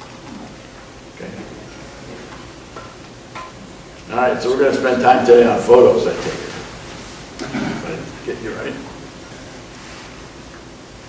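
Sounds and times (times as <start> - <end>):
faint room murmur: 0.0 - 11.0.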